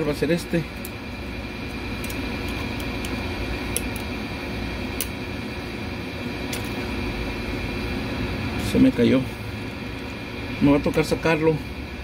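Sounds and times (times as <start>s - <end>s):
background hum: 0.0s - 12.0s.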